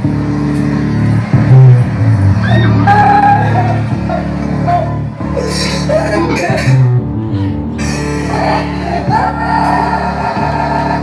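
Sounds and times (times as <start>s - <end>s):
loud live band music: 0.0s - 11.0s.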